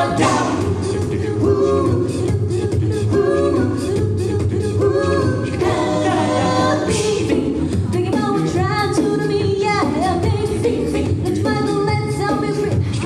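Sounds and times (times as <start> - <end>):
a cappella group singing: 0.0 - 13.0.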